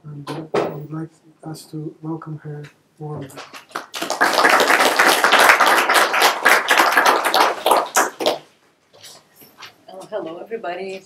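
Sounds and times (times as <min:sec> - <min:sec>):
audience applauding: 0:03.3 - 0:08.5.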